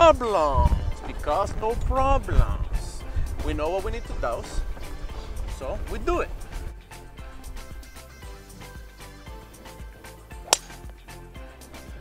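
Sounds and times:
background music: 0:00.0 - 0:12.0
golf club striking ball: 0:10.4 - 0:11.1.

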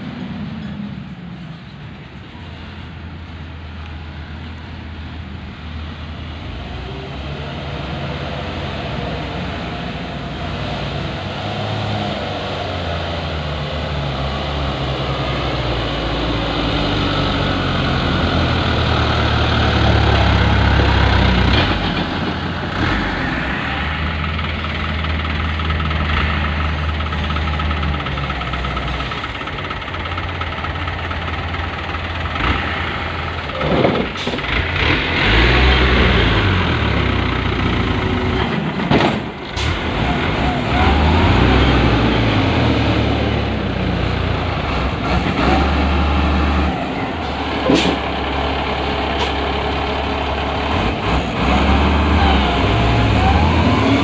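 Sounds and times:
diesel engines working hard: 0:00.0 - 0:54.0.

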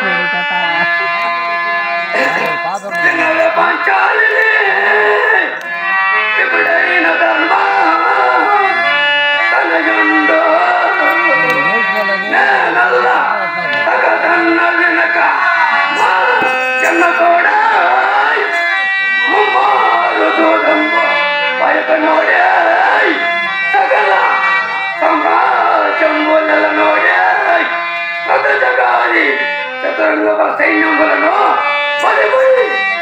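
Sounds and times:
harmonium chords: 0:00.0 - 0:33.0
person singing: 0:00.0 - 0:33.0.

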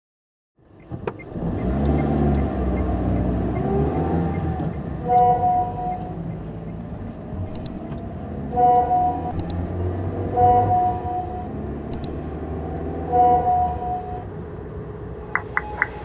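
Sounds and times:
car engine and road rumble: 0:00.6 - 0:16.0
steady multi-pitch tone: 0:05.0 - 0:07.7, 0:08.4 - 0:09.7, 0:10.3 - 0:12.4, 0:13.0 - 0:14.3.

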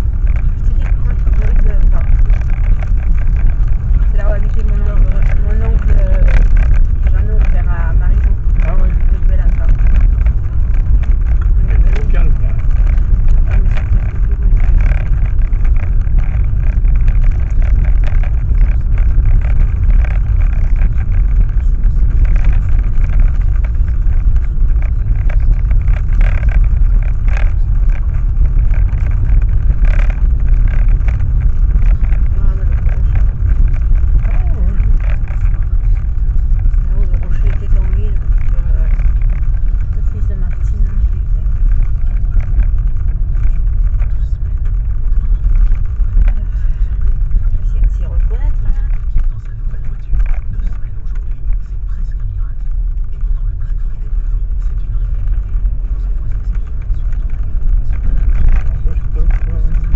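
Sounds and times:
car tyres and engine rumbling: 0:00.0 - 0:59.9
knocks and jolts from rough road: 0:00.0 - 0:59.9.

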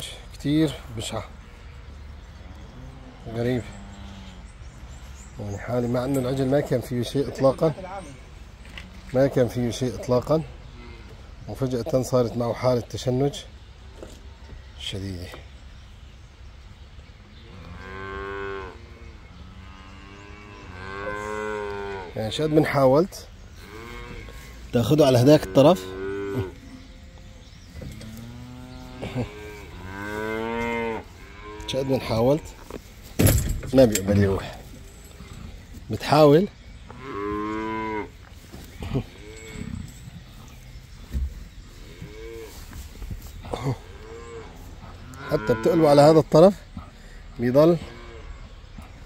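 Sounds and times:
calf mooing: 0:17.5 - 0:22.6, 0:27.9 - 0:32.6, 0:36.9 - 0:38.1, 0:44.0 - 0:46.0.

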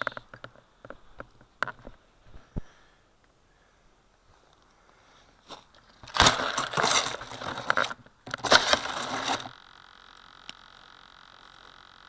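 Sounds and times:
faint steady hum: 0:00.0 - 0:12.0
hand handling noise: 0:04.2 - 0:09.6.

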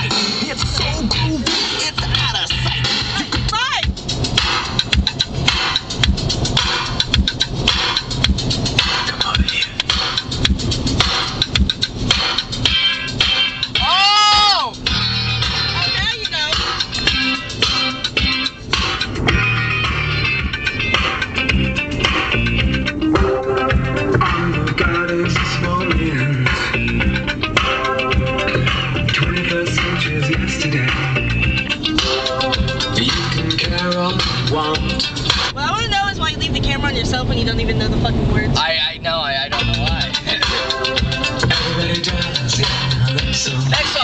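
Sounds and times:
song on a car stereo: 0:00.0 - 0:44.0.

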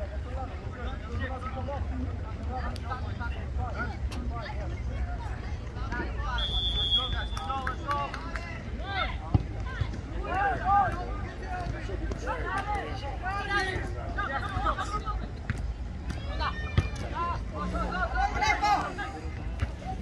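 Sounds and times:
people shouting short calls: 0:06.3 - 0:07.7.

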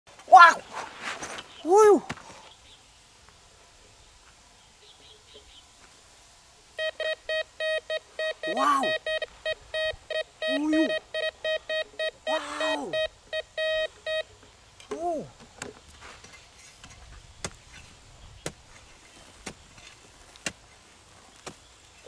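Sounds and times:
metal detector beeps: 0:06.8 - 0:14.3.

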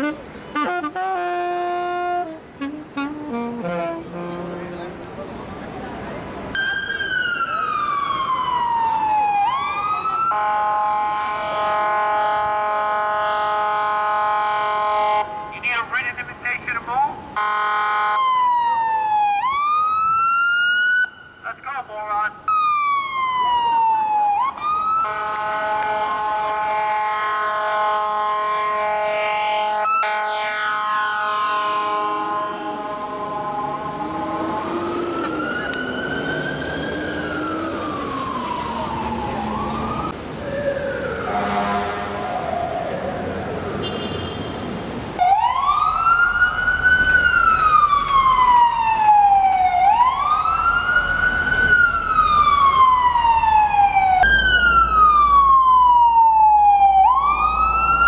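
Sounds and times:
air horn blasts: 0:00.0 - 0:05.0, 0:25.0 - 0:32.9, 0:41.3 - 0:42.3
siren sweeping up and down: 0:29.2 - 0:43.4.

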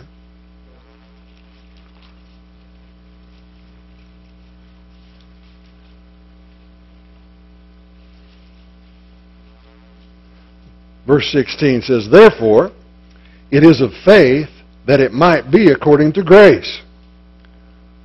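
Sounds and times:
electrical mains hum: 0:00.0 - 0:18.0.

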